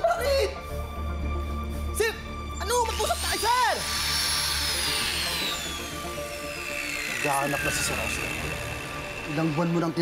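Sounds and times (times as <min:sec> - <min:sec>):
power drill winding down: 0:02.8 - 0:10.0.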